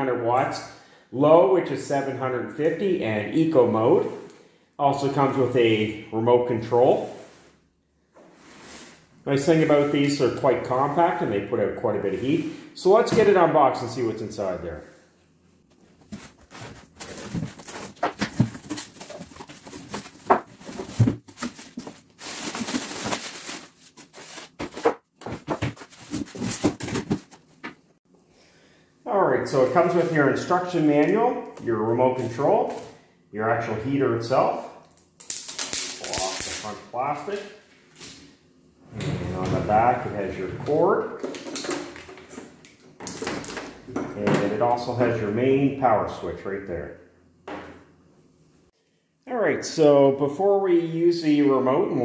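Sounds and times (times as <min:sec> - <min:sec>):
cardboard box being handled: 0:16.0 - 0:27.4
plastic bag crinkling: 0:16.9 - 0:24.6, 0:35.2 - 0:36.8.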